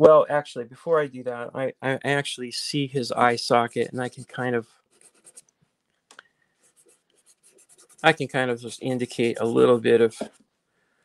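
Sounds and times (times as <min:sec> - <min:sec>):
pastel stick scratching paper: 0:03.8 - 0:05.4, 0:06.6 - 0:10.4.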